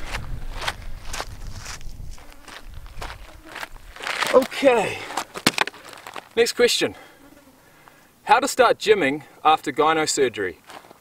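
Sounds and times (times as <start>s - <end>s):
footsteps on rocky dirt trail: 0.0s - 7.1s, 10.6s - 11.0s.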